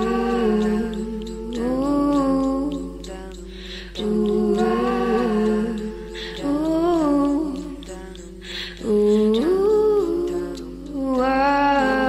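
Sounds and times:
person humming a melody: 0.0s - 12.0s.

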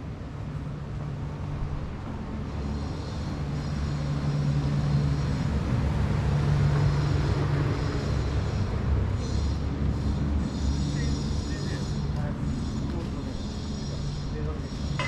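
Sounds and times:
street rumble: 0.0s - 15.0s
vehicle engine humming: 0.0s - 15.0s.

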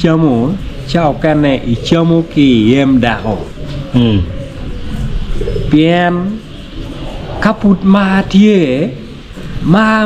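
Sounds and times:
man's vocal sounds: 3.9s - 4.4s.

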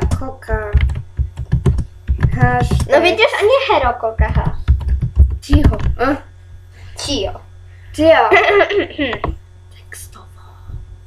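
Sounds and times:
person speaking: 2.1s - 10.4s.

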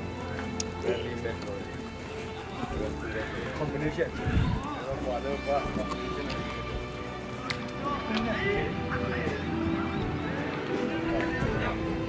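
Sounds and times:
many voices talking: 0.0s - 12.0s
music: 0.0s - 12.0s.

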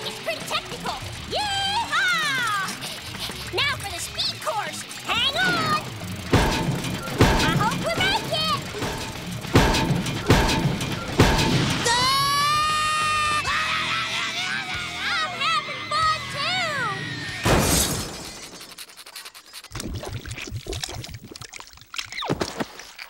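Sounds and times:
sharp crashing impacts: 6.2s - 13.4s, 17.4s - 18.7s
character yelping and screaming: 11.8s - 17.5s
long falling scream: 11.9s - 17.6s.

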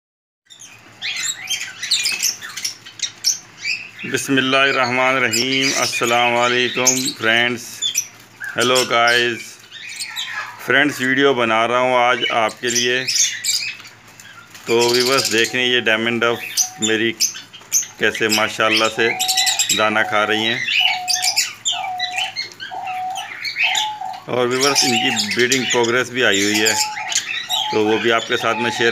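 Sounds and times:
small birds chirping: 0.5s - 28.9s
dove cooing: 0.9s - 28.9s.

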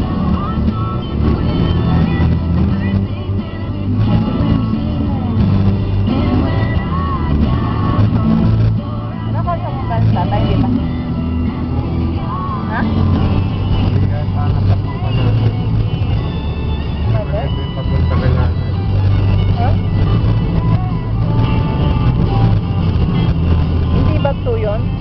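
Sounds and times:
voices: 0.0s - 21.7s, 23.9s - 25.0s
car engine and road rumble: 0.0s - 25.0s
music playing: 0.0s - 25.0s.

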